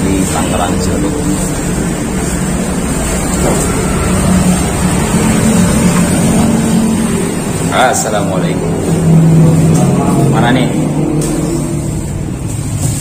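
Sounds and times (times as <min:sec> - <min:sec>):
rumble of passing vehicles: 0:00.0 - 0:13.0.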